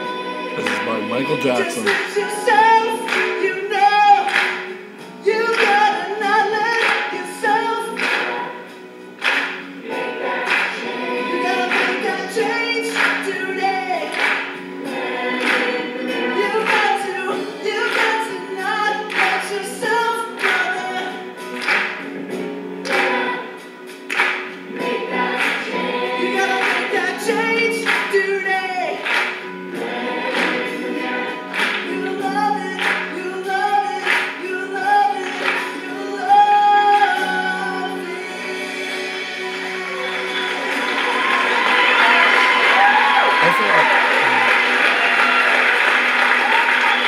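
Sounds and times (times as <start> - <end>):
voices singing: 0.0 - 21.5, 24.7 - 41.7.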